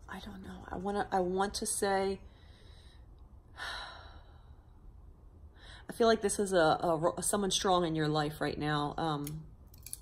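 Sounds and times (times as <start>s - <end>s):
woman speaking: 0.0s - 2.2s
woman breathing in: 2.3s - 4.7s.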